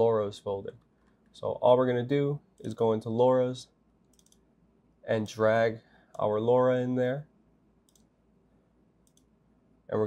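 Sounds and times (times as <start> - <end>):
computer mouse clicks: 4.0 - 4.5, 7.8 - 8.2, 9.0 - 9.4.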